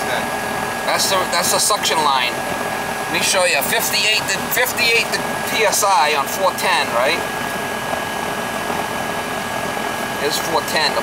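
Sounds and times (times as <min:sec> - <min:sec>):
condensing unit whirring: 0:00.0 - 0:11.0.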